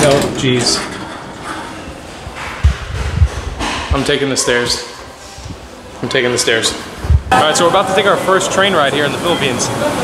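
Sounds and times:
dull low thumps: 0:02.2 - 0:04.2, 0:06.9 - 0:07.3.

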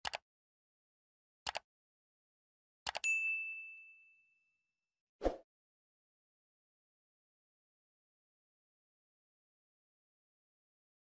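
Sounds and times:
notification bell ding: 0:03.0 - 0:04.5.

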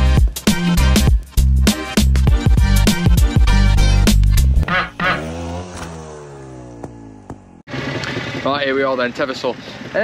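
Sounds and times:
motorcycle engine revving: 0:02.4 - 0:09.2.

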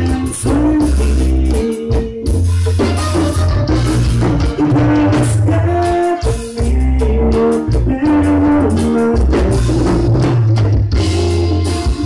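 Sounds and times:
button accordion melody: 0:00.0 - 0:06.6
live band playing: 0:00.0 - 0:12.0.

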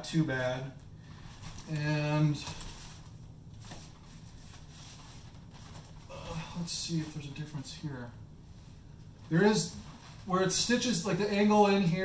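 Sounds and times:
low steady room hum: 0:00.0 - 0:12.0
handling of foam pads: 0:01.2 - 0:07.2.

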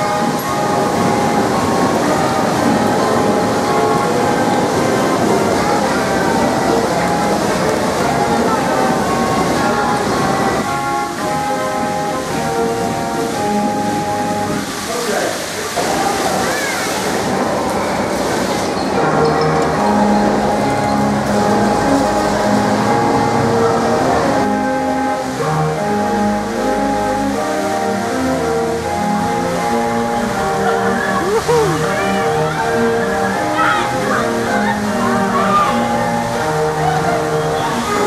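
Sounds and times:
fairground ride rushing rumble: 0:00.0 - 0:38.0.

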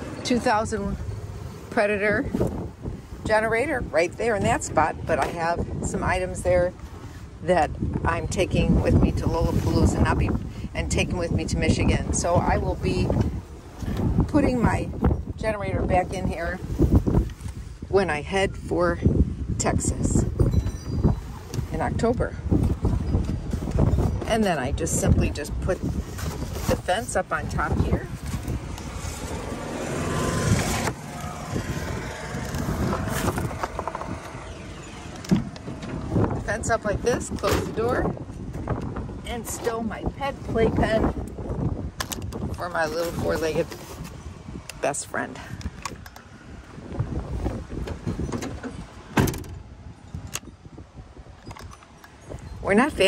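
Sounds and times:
wind rumble on microphone: 0:00.0 - 0:53.0
cardboard boxes scraping: 0:25.8 - 0:27.3, 0:28.0 - 0:34.1.

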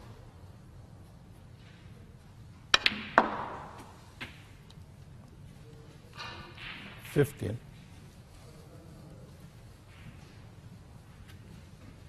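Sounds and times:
cue tip striking ball: 0:02.7 - 0:04.0
ball dropping into pocket: 0:02.7 - 0:04.3
snooker balls clicking: 0:02.7 - 0:04.8.

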